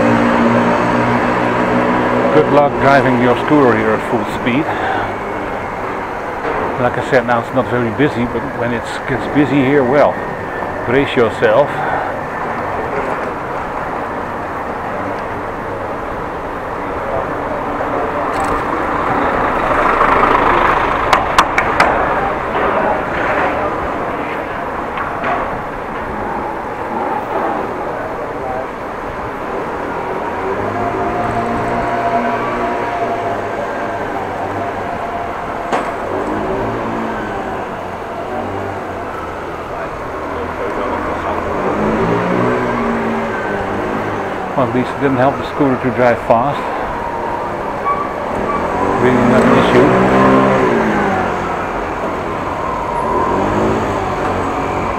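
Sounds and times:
air rush and tyres on pavement: 0.0 - 54.9.

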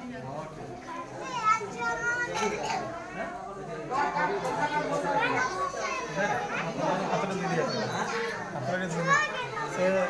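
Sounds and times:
children chattering: 0.0 - 10.0
high child's voice: 0.9 - 3.0, 5.2 - 6.7, 9.0 - 9.7.

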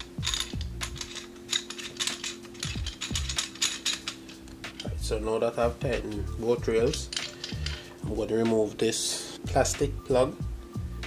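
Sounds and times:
threads clicking and scraping: 0.0 - 8.6.

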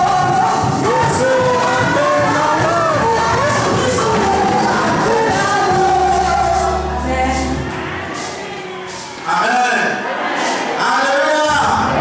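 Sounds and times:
instrumental backing: 0.0 - 10.8
congregation singing: 0.0 - 12.0.

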